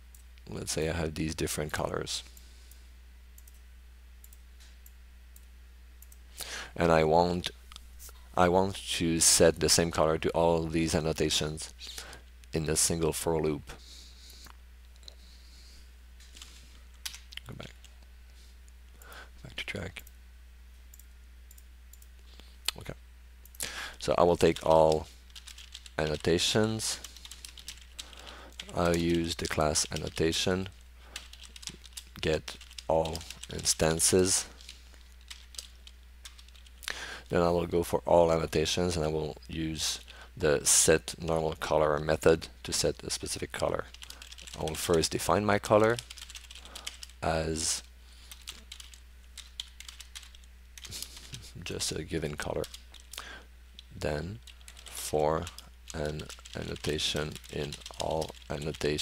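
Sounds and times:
low electrical hum: 0.0 - 59.0.

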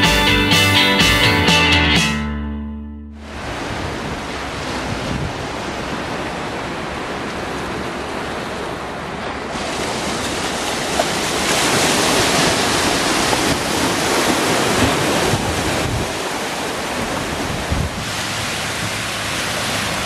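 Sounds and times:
waves washing onto sandy beach: 3.3 - 20.0.

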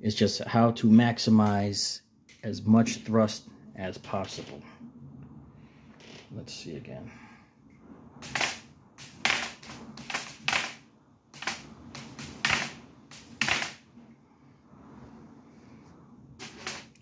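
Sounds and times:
high-voltage sparks crackling: 8.2 - 13.8.

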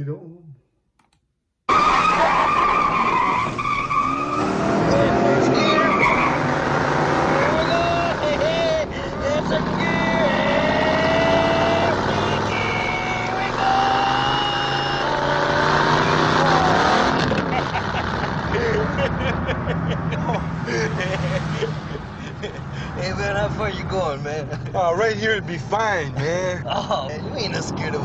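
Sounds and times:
tire squeals: 1.7 - 17.5.

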